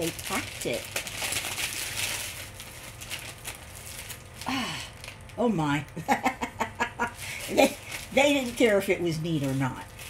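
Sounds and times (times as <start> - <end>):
plastic bag crinkling: 0.0 - 6.1, 7.0 - 10.0.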